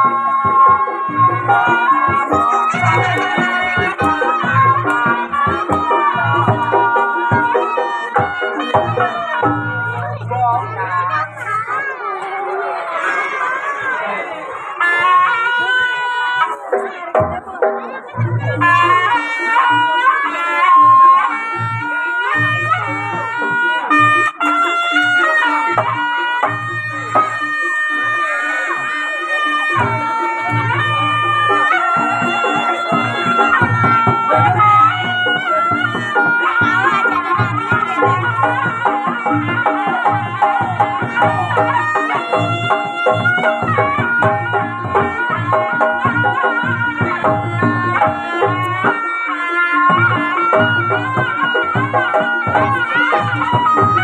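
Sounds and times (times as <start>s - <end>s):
steady drum beat: 0.0s - 12.0s, 29.9s - 49.0s
reed trumpet melody: 0.0s - 54.0s.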